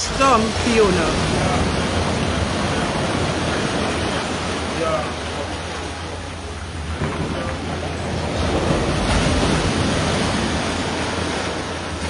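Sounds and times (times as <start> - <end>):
surf washing over stones: 0.0 - 12.0.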